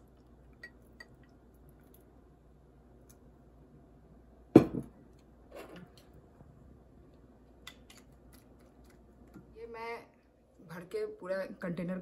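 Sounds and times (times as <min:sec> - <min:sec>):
glass knocking on table: 0:04.6 - 0:04.9.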